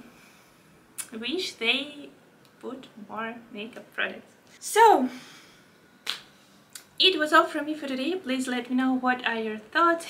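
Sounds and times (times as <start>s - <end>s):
sharp snap or click: 6.0s - 6.9s.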